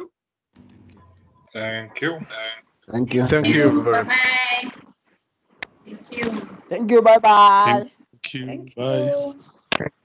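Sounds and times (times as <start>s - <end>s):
people talking on video call: 0.7s - 4.7s, 5.9s - 9.9s.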